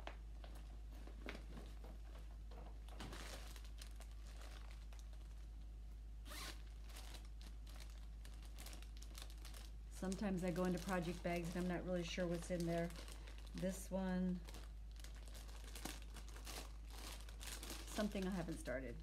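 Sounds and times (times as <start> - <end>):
zipper: 6.2 - 6.6.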